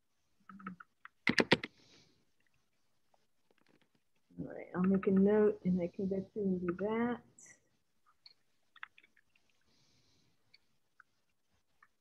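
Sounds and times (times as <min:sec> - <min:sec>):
typing on computer keyboard: 0:00.5 - 0:01.7.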